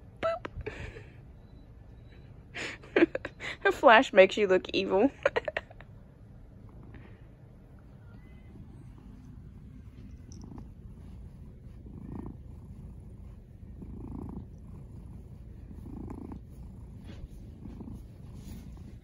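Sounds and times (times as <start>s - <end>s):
cat purring: 2.8s - 19.0s.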